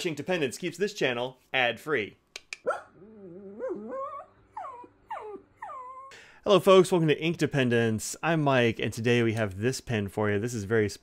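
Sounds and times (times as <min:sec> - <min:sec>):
whining whimpering cries: 0:02.9 - 0:06.2.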